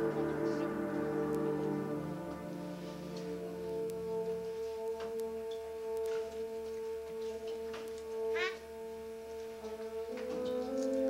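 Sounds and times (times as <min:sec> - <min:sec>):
concert band sustained chord: 0:00.0 - 0:11.0.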